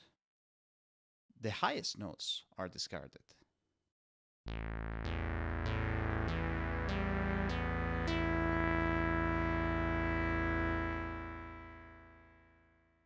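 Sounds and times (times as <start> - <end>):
synthesizer chord: 4.5 - 13.0.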